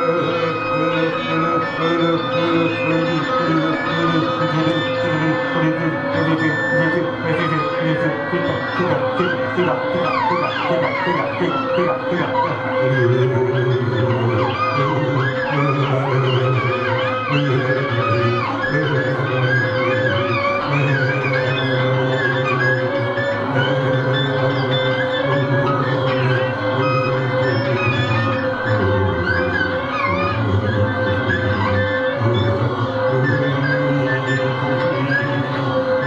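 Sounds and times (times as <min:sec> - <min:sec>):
droning tone: 0:00.0 - 0:36.0.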